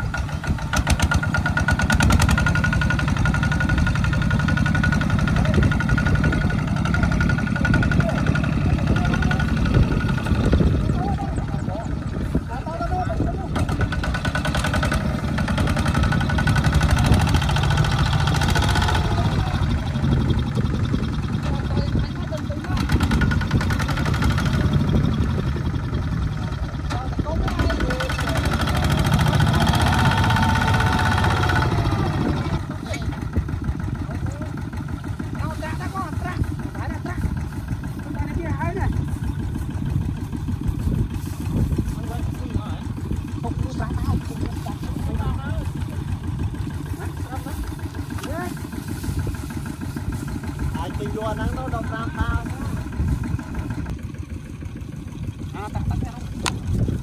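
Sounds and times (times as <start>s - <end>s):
diesel engine chugging: 0.0s - 57.0s.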